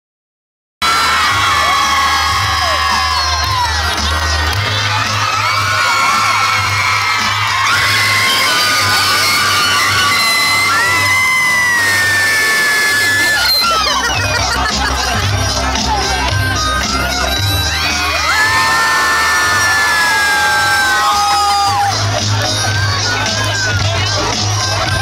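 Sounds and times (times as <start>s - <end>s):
crowd cheering and screaming: 0.8s - 25.0s.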